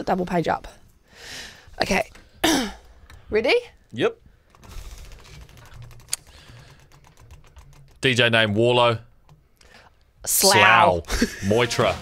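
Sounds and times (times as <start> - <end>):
prize wheel clicking: 4.4 - 9.4.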